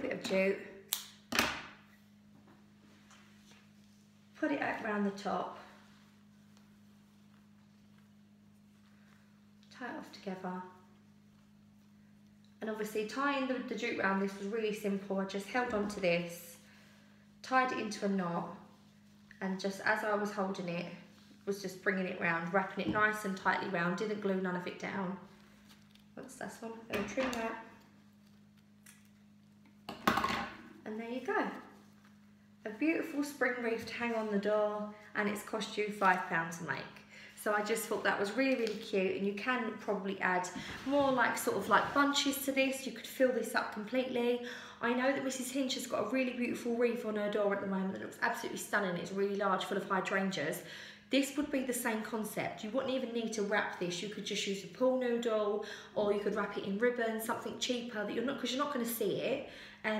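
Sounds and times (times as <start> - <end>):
low steady hum: 0.0 - 59.9.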